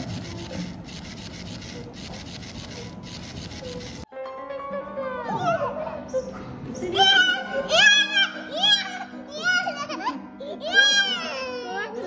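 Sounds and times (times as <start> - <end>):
toy motor rhythmic rasping: 0.0 - 4.1
background music: 2.9 - 12.0.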